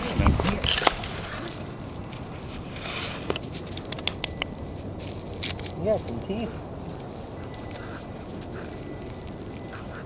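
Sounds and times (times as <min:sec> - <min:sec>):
puppy paws pattering on floor: 0:03.3 - 0:10.0.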